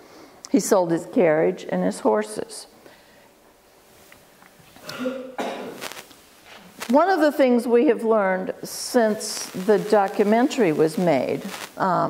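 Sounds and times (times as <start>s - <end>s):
person clearing throat: 4.8s - 5.8s.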